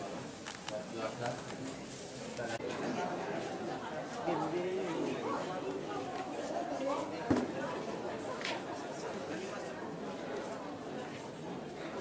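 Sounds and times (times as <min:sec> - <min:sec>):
crowd talking indistinctly: 0:00.0 - 0:12.0.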